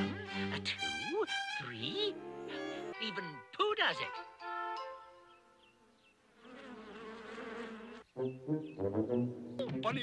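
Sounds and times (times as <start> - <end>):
held musical notes: 0.0 - 5.7, 8.2 - 10.0
cartoon bees buzzing: 6.4 - 9.4.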